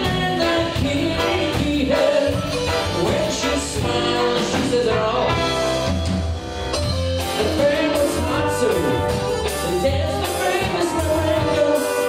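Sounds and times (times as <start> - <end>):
bass and drums: 0.0 - 12.0
electric guitar: 0.0 - 12.0.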